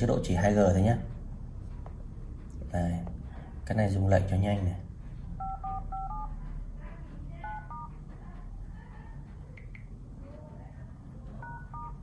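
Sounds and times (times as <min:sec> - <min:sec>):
phone keypad beeps: 0:05.4 - 0:06.4, 0:07.4 - 0:08.0, 0:11.4 - 0:12.0.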